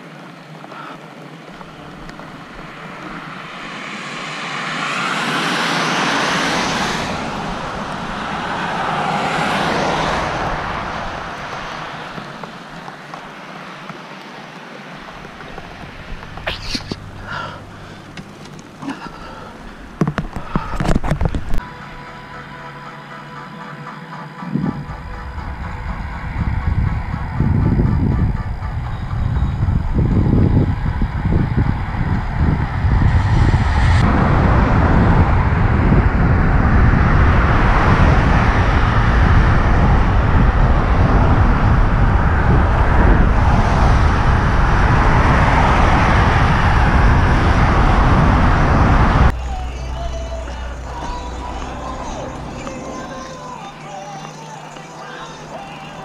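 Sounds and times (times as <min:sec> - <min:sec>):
bicycle tyre rumble: 0:00.0 - 0:21.6, 0:24.5 - 0:56.0
wind rushing over microphone: 0:01.2 - 0:21.6, 0:24.4 - 0:53.8.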